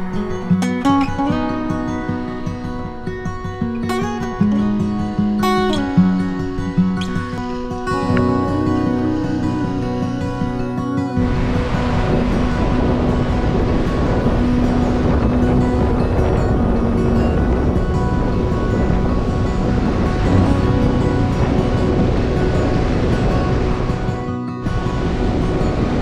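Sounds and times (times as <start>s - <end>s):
background music: 0.0s - 26.0s
waves breaking on shore: 0.0s - 26.0s.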